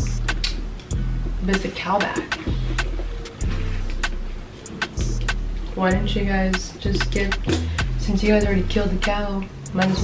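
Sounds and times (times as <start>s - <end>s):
background music with bass line: 0.0s - 10.0s.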